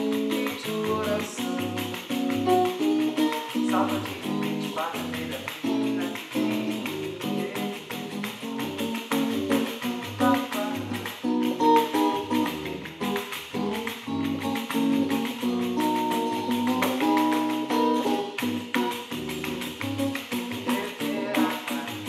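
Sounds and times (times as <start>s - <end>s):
nylon-string guitar strumming: 0.0s - 22.0s
tambourine tapped and jingled: 0.0s - 22.0s.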